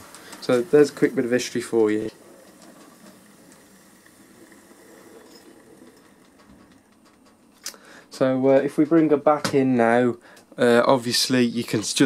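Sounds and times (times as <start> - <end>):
model train motor whirr: 0.0 - 6.9.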